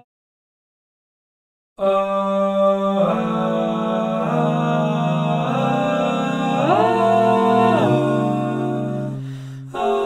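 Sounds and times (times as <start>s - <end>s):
a cappella vocal harmony: 1.8s - 10.0s.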